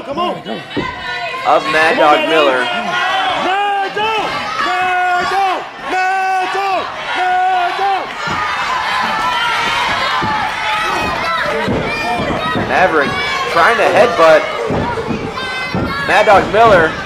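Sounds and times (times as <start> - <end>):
crowd noise: 0.0 - 17.0
thuds from wrestling ring: 14.6 - 16.9.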